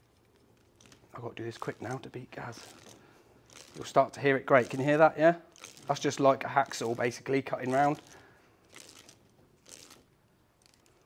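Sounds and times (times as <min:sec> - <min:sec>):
cable stripper blade rasping: 0:00.6 - 0:11.0.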